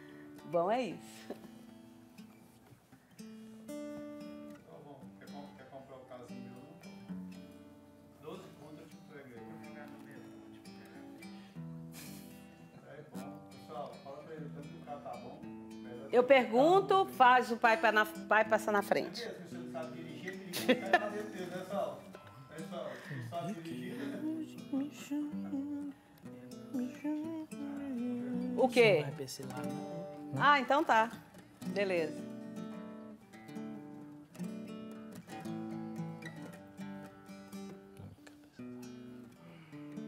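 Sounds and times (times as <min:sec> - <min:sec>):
acoustic guitar strumming: 0:00.0 - 0:40.0
person humming a melody: 0:23.1 - 0:26.0, 0:26.7 - 0:30.4.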